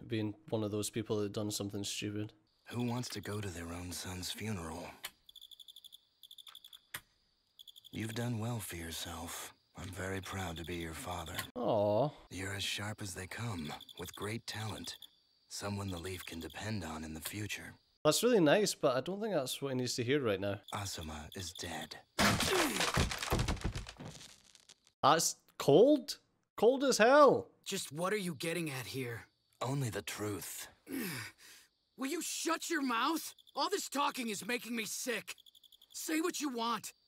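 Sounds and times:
crickets chirping: 0.6s - 24.4s, 26.7s - 37.0s
crash with clattering knocks: 22.2s - 24.8s.

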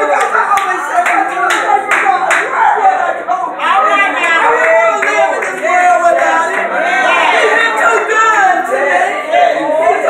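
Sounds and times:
raised voice: 0.0s - 10.0s
hand claps: 0.1s - 2.5s.

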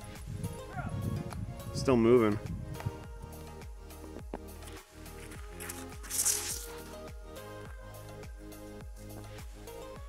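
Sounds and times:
background music with a steady beat: 0.0s - 10.0s
short burst of hiss: 5.8s - 6.8s.

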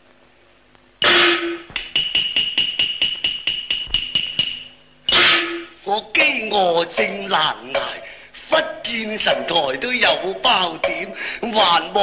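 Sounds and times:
quick ringing percussion strikes: 1.0s - 5.8s.

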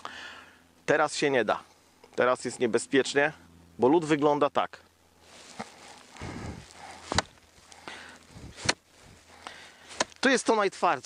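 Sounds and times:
footsteps crunching in snow: 5.2s - 11.0s.

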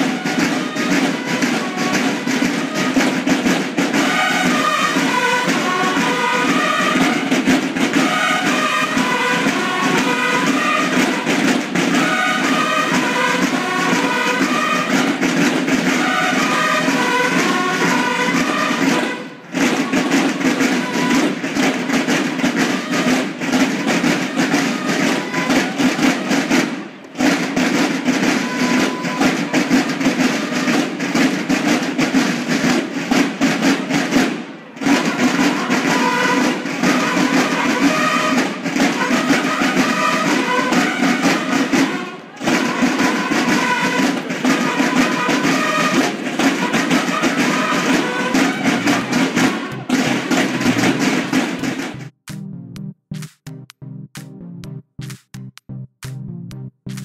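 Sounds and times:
marching snare drums: 0.0s - 52.5s.

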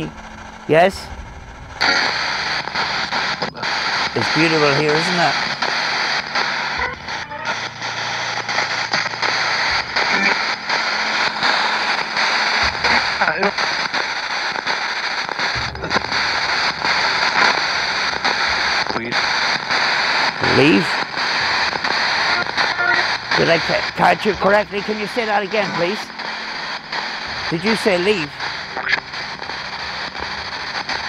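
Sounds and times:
radio music fragments: 0.0s - 31.0s
radio static hiss: 0.0s - 31.0s
radio voice fragments: 0.0s - 31.0s.

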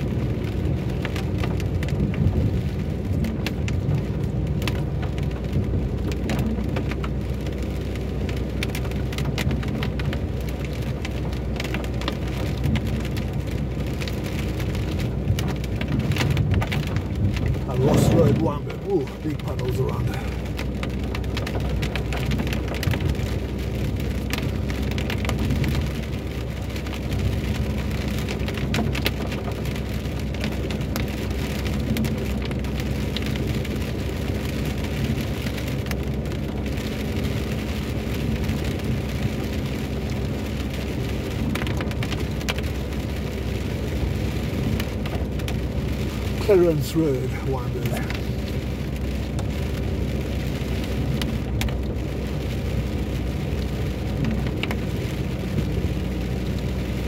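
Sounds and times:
heavy rain on car roof: 0.0s - 57.0s
tyres rumbling on wet road: 0.0s - 57.0s.

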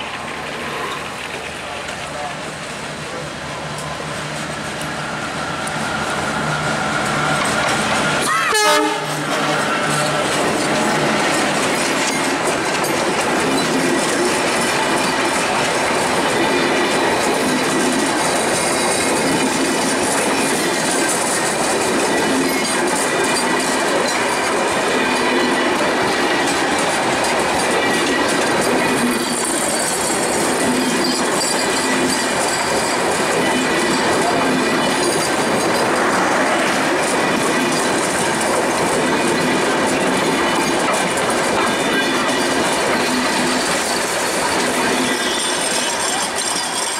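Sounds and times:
train wheels clattering on rails: 0.0s - 46.9s
high wheel squeal: 4.9s - 11.5s, 28.0s - 36.7s, 41.6s - 46.9s.

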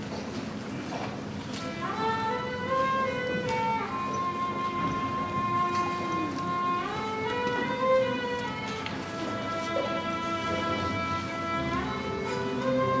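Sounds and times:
string orchestra bowed chords: 1.5s - 13.0s.

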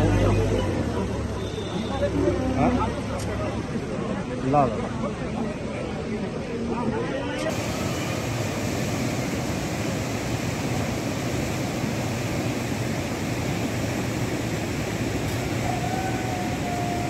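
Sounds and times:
river rushing roar: 7.5s - 17.0s.

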